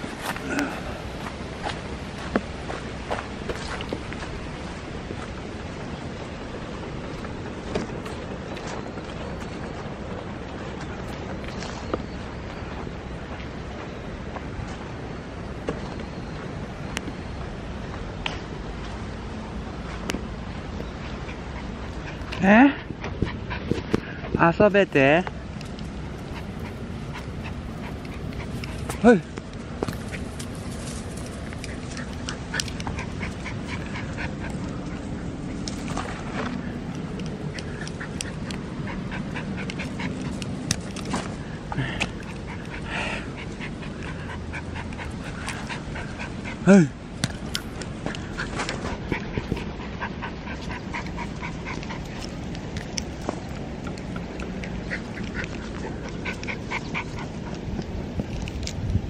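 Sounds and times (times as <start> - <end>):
steady low rumble: 0.0 - 59.0
dog moving and breathing: 25.4 - 58.8.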